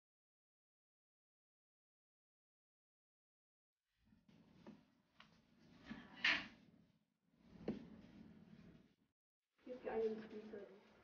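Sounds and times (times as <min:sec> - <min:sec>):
low room background: 0:03.9 - 0:11.0.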